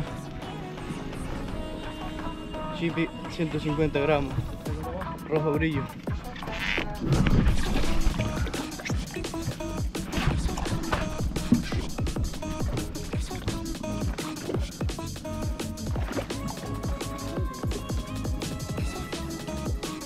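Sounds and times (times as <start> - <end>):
background music with steady beat: 0.0 - 20.0.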